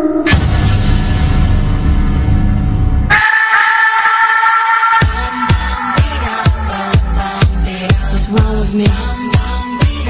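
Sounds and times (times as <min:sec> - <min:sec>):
bass-heavy music: 0:00.0 - 0:03.3, 0:04.0 - 0:10.0
whistle-like held chord: 0:03.1 - 0:07.2.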